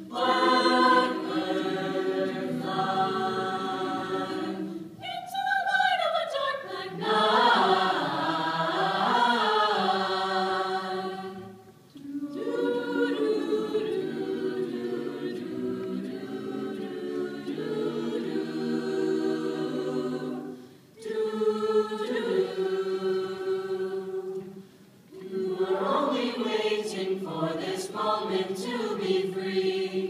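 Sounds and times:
mixed choir singing: 0.0 - 30.0.

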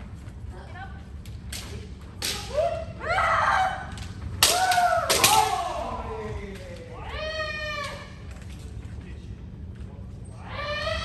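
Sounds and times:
people shouting: 2.2 - 8.2, 10.4 - 11.0.

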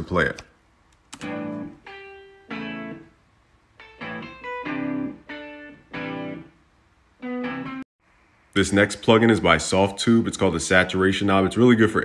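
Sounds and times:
electric guitar riff: 1.2 - 3.2, 3.8 - 6.6, 7.2 - 7.8.

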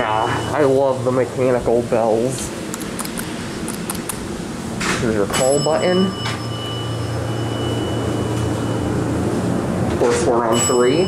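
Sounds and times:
ventilation fan humming: 0.0 - 11.0.

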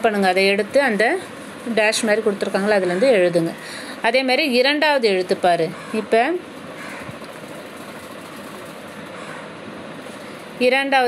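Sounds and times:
hiss-like background hum: 0.0 - 11.0.

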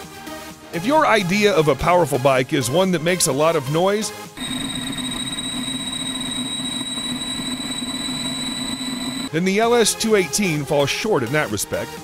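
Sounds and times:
electric motorcycle whine: 4.4 - 9.3.

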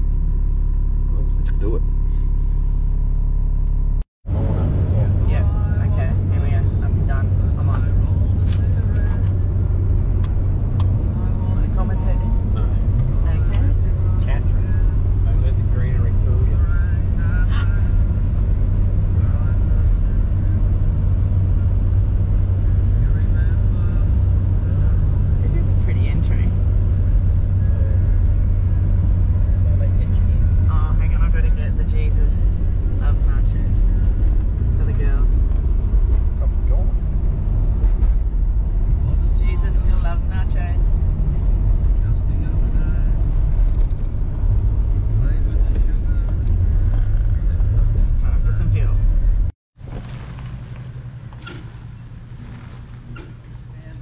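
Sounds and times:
road and engine drone: 0.0 - 54.0.

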